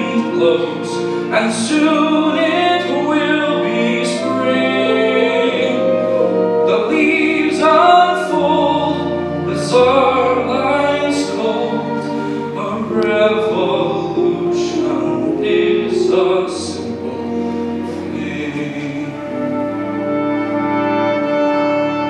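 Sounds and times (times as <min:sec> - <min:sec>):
orchestral accompaniment: 0:00.0 - 0:22.0.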